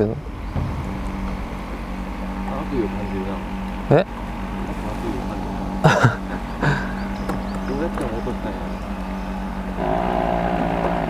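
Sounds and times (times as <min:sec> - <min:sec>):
electric boat motor humming: 0:00.0 - 0:11.0
laughter: 0:05.8 - 0:07.0.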